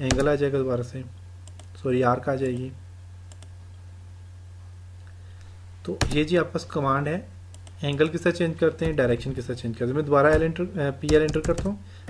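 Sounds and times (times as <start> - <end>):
steady low hum: 0.0 - 12.0
computer mouse clicks: 1.4 - 1.8, 3.3 - 3.5, 7.5 - 8.1.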